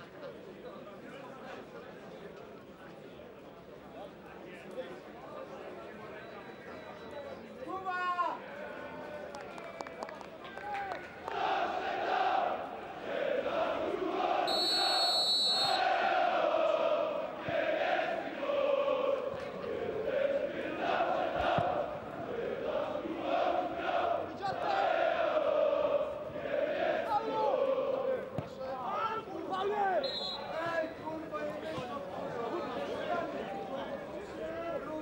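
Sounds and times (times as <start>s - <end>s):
referee's whistle: 6.1s - 7.4s, 14.5s - 15.9s, 30.0s - 31.0s
football supporters chanting: 11.2s - 30.8s.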